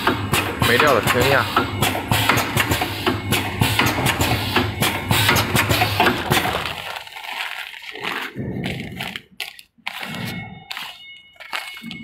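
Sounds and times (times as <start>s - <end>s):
machine clattering: 0.0s - 7.0s
plastic bags crinkling: 4.9s - 12.0s.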